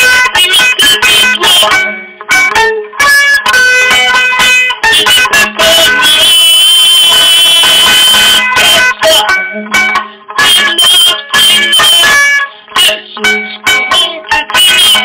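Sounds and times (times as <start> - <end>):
long-necked lute chord strokes: 7.2 - 15.0.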